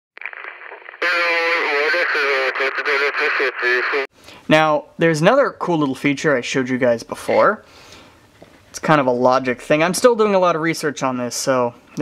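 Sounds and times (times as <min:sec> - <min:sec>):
radio-like voice wavering: 0:00.2 - 0:04.1.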